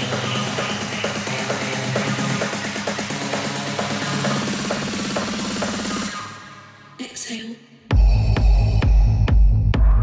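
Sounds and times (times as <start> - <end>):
techno beat: 0.0 - 6.8, 7.9 - 10.0
low bass drone: 7.9 - 10.0.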